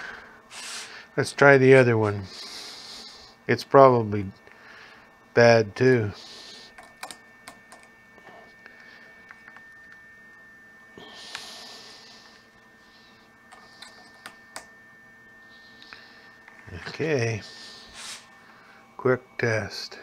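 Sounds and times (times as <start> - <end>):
faint steady high tone: 0.0 - 20.0.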